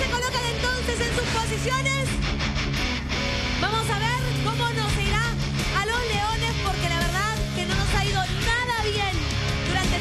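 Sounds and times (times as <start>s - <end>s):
band music with guitar: 0.0s - 10.0s.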